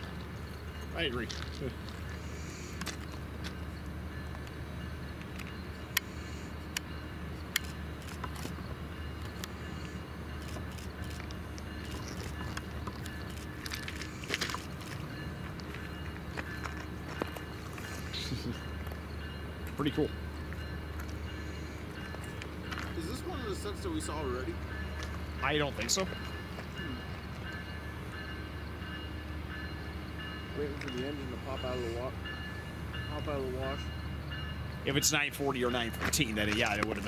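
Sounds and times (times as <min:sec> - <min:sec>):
diesel locomotive rumbling: 0:00.0 - 0:37.0.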